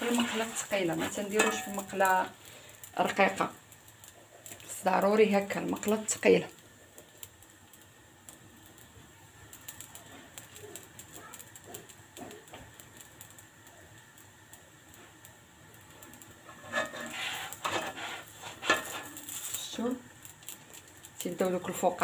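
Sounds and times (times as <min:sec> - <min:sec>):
flatbread crackling in oil: 0:00.0 - 0:22.0
spatula handling sounds: 0:16.5 - 0:19.6.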